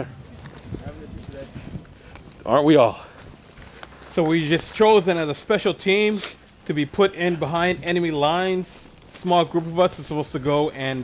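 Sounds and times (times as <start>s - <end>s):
footsteps on dry leaves: 0.0s - 11.0s.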